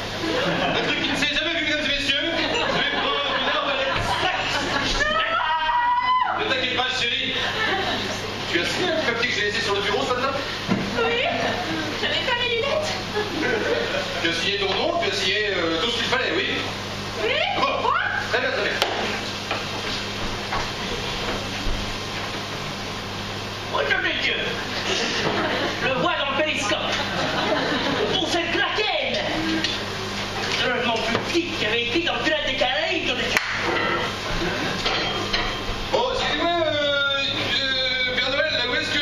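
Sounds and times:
electrical hum with hiss: 0:00.0 - 0:39.0.

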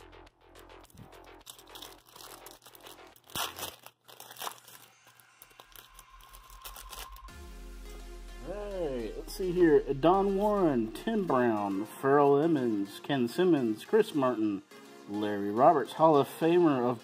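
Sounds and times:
quiet background music: 0:00.0 - 0:17.0
wrapper crinkling and tearing: 0:00.7 - 0:07.3.

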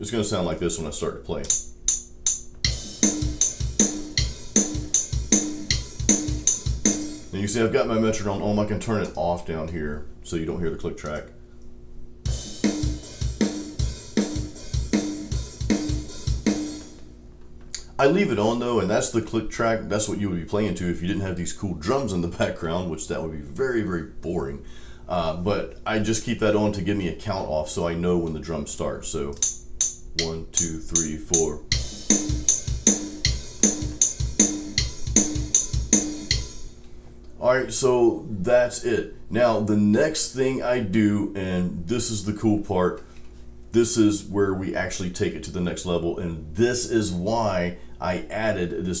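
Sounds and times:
programmed drum beat: 0:01.5 - 0:07.8, 0:12.2 - 0:17.1, 0:29.4 - 0:36.8.

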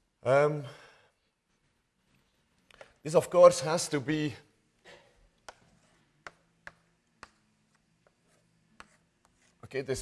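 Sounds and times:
chalk clicking on blackboard: 0:05.4 - 0:09.6.

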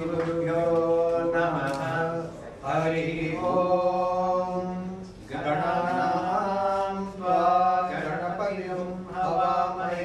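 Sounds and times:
monks chanting: 0:00.0 - 0:10.0.

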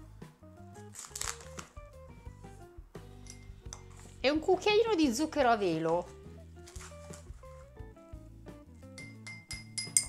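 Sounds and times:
background music: 0:00.0 - 0:10.0
teaspoon clinking against glass: 0:03.2 - 0:03.8, 0:09.0 - 0:10.0.

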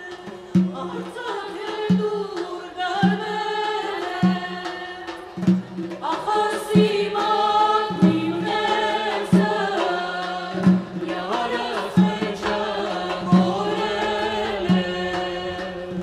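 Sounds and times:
drum beats: 0:00.0 - 0:16.0
woman singing: 0:00.0 - 0:16.0.

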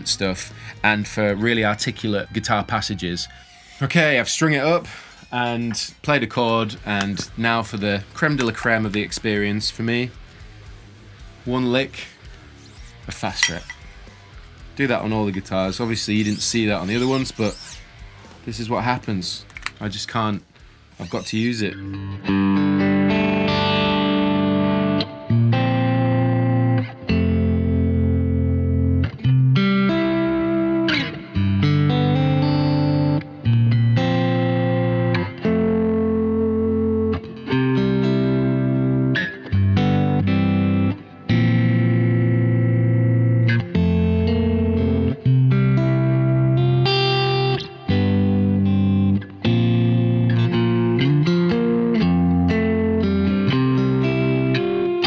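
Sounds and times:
electric guitar chords: 0:20.5 - 0:55.0.

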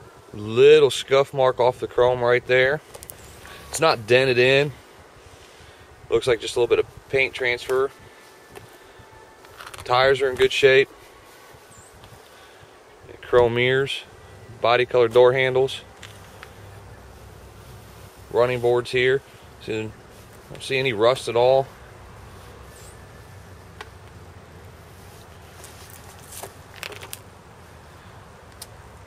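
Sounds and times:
faint outdoor background noise: 0:00.0 - 0:29.0.

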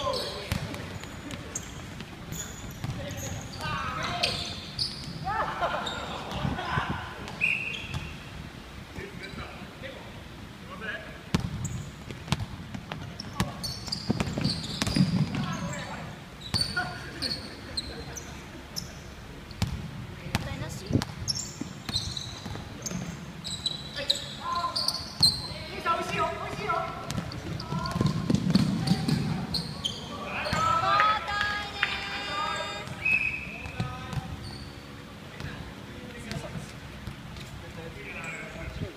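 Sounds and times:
sneaker squeaks: 0:00.0 - 0:06.3, 0:07.3 - 0:08.2, 0:11.4 - 0:30.8, 0:32.2 - 0:35.6
players calling out: 0:21.9 - 0:35.2.

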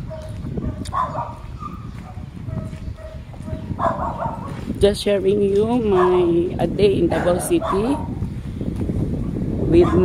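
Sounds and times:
dog barking and yipping: 0:00.0 - 0:04.6, 0:05.9 - 0:06.4, 0:07.0 - 0:08.2, 0:09.8 - 0:10.0
footsteps: 0:00.0 - 0:06.2.

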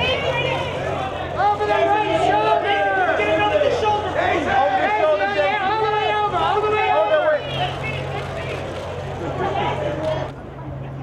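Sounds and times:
photographers shouting: 0:00.0 - 0:08.8
babble of voices: 0:00.0 - 0:11.0.

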